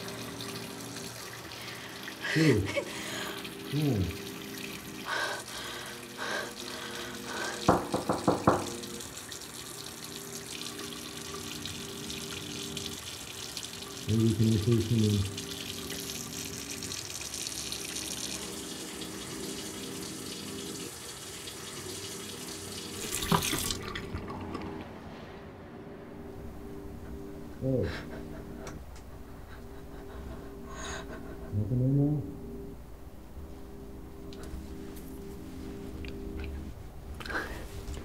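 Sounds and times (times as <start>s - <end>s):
faucet running into sink: 0.0s - 24.9s.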